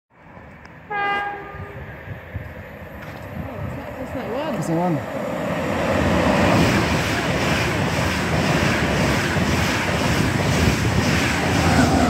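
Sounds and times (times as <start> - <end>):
train rumble: 0.2 - 12.0
train horn blast: 0.9 - 1.9.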